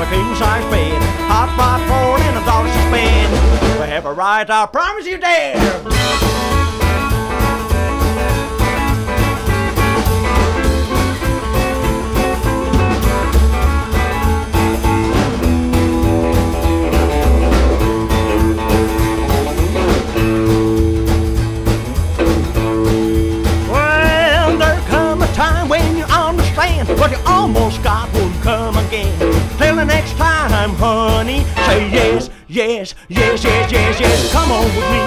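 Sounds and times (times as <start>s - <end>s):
steady driving beat: 0.0s - 4.0s, 5.6s - 32.3s, 33.2s - 35.0s
upright bass: 0.0s - 35.0s
electric guitar solo: 5.9s - 20.5s
voice with sliding notes: 23.7s - 32.4s.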